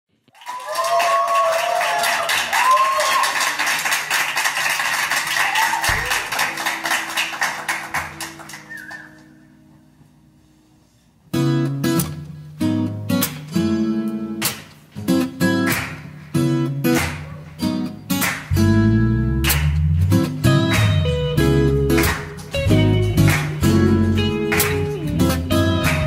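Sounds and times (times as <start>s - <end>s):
acoustic guitar strumming: 7.9s - 26.0s.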